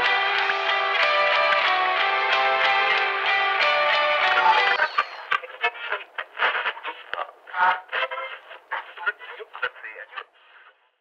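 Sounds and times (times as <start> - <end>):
tinny radio-like audio: 0.0 - 11.0.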